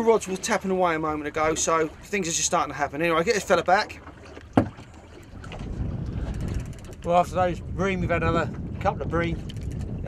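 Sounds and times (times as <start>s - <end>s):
wind and water rumble: 0.0s - 10.0s.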